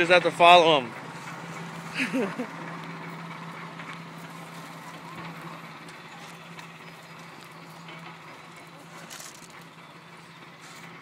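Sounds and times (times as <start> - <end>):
person laughing: 1.9 - 2.6.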